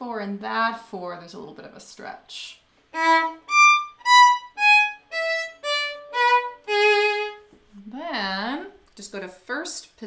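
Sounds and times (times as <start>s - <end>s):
solo violin bowed notes: 2.9s - 7.5s.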